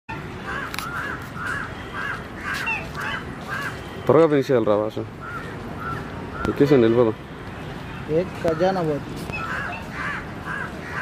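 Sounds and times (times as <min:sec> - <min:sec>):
swan calling: 0:00.1 - 0:03.9, 0:09.3 - 0:11.0.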